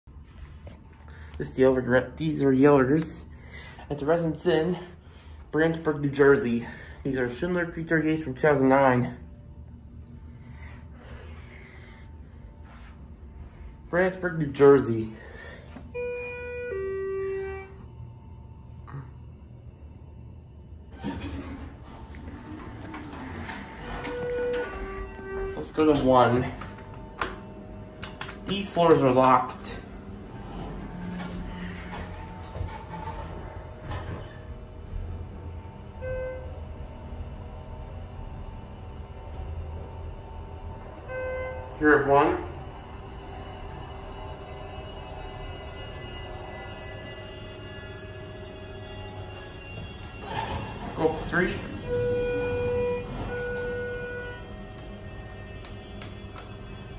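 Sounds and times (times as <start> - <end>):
steady hum of held tones: 0.1 - 56.9
elevator doors sliding open: 20.7 - 56.9.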